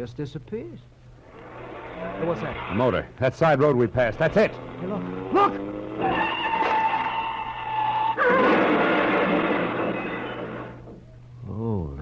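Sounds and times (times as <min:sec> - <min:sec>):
tyres squealing: 0:04.1 - 0:11.1
car crash: 0:06.0 - 0:11.0.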